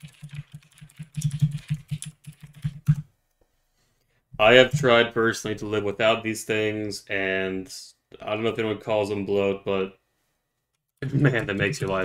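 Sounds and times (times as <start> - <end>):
typing on computer keyboard: 0.0 - 3.0.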